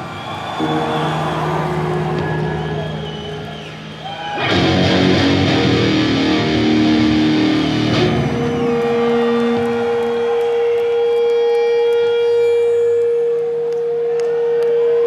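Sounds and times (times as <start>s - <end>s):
electric guitar solo: 0.6s - 15.0s.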